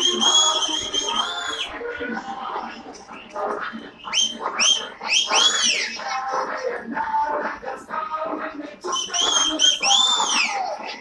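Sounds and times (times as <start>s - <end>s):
person whistling loudly: 0.0s - 1.7s, 4.1s - 6.0s, 8.8s - 10.8s.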